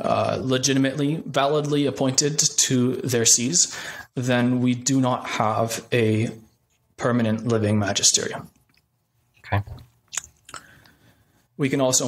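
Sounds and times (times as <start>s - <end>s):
lip and tongue clicks: 10.1s - 10.7s.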